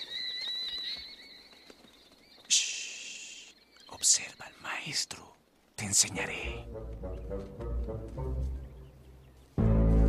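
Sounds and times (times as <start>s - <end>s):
flock of birds twittering: 0.0s - 6.4s.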